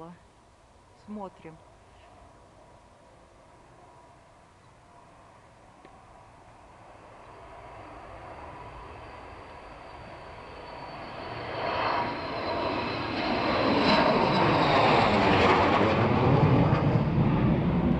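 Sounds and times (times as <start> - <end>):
high jet engine whine: 0.0 - 17.9
jet flying low overhead: 1.6 - 17.9.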